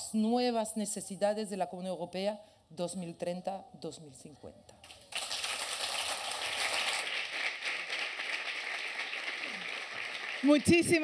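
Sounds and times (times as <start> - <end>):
audience applauding: 5.1 - 11.0.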